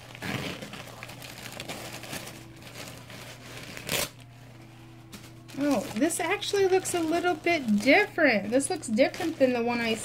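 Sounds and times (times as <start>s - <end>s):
plastic packaging crinkling: 0.0s - 4.4s, 5.0s - 10.0s.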